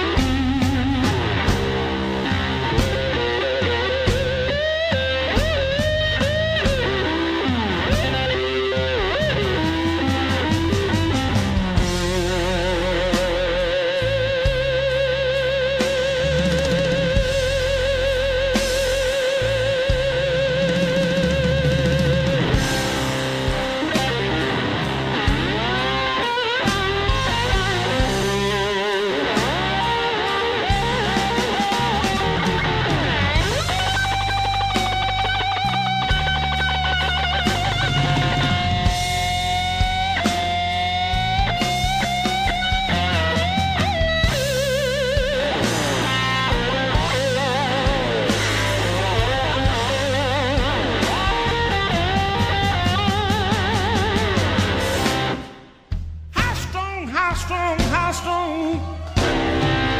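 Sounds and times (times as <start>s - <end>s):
slide guitar solo: 0.0s - 55.6s, 58.6s - 59.9s
bass and drums: 0.0s - 59.9s.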